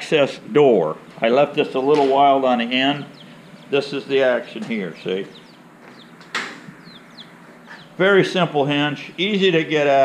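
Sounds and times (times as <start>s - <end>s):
chicks peeping: 1.0s - 10.0s.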